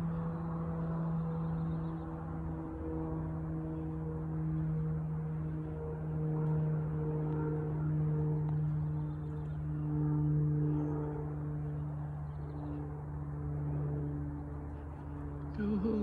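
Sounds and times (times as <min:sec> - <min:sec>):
low mechanical hum: 0:00.0 - 0:16.0.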